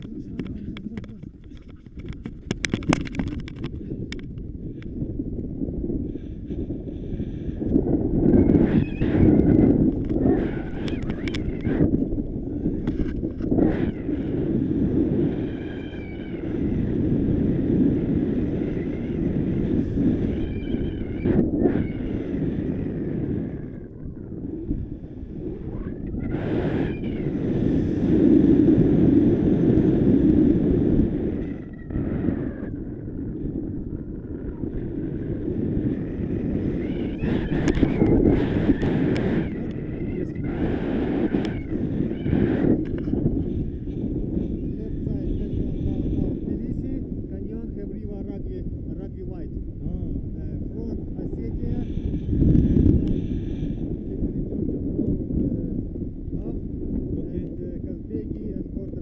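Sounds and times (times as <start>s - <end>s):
sharp clicks: 0.0s - 4.9s, 9.3s - 11.7s
wind buffeting microphone: 0.0s - 59.0s.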